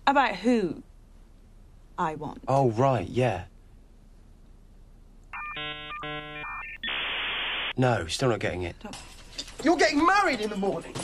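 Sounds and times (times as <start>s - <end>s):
buzzy electronic tones: 5.4s - 7.7s
static-like hiss: 5.4s - 8.1s.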